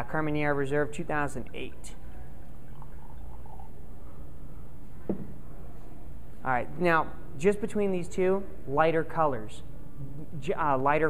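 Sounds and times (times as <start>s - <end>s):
low room hum: 0.0s - 11.0s
wine pouring into a glass: 1.0s - 4.0s.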